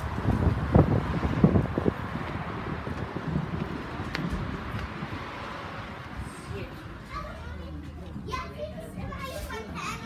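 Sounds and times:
children chattering and calling out: 0:05.1 - 0:10.0.

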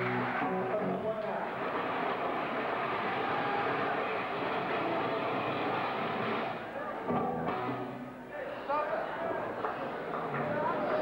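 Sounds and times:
live punk band and crowd: 0:00.0 - 0:08.3.

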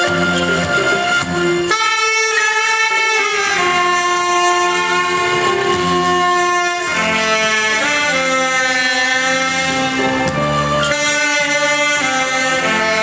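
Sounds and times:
saxophones playing slow melody: 0:00.0 - 0:13.0.

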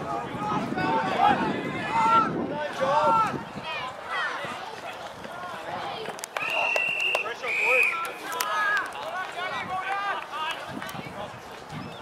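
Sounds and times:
whistle blasts: 0:06.4 - 0:08.1.

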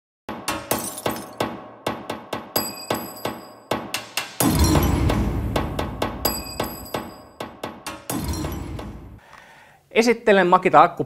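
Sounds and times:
smashing impact crashes: 0:04.4 - 0:06.8.

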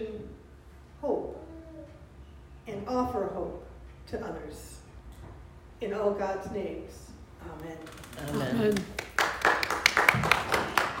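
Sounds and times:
people clapping: 0:08.1 - 0:11.0.

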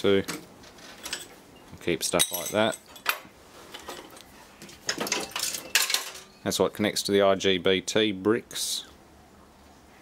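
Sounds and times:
metal parts clinking and clattering: 0:00.7 - 0:01.4, 0:02.1 - 0:04.2, 0:04.9 - 0:06.3.

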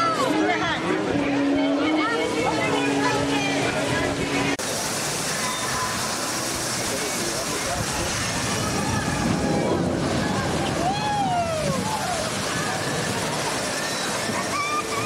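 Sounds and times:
crowd chatter: 0:00.0 - 0:15.0
rushing water: 0:00.0 - 0:15.0.

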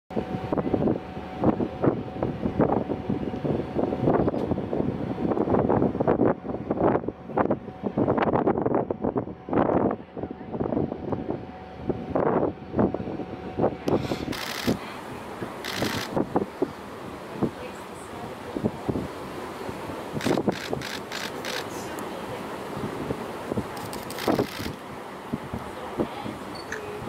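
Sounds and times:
wind buffeting microphone: 0:00.1 - 0:27.0.

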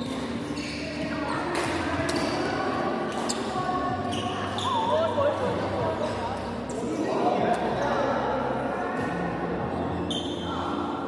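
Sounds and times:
sneakers squeaking on wooden floor: 0:00.0 - 0:05.3, 0:09.7 - 0:10.8
chatter in echoing hall: 0:00.0 - 0:11.0.

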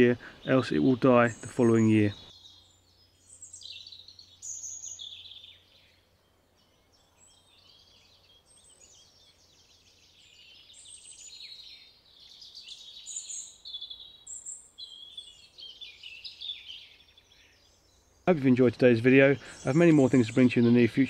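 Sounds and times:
birds chirping and trilling: 0:00.0 - 0:21.0.

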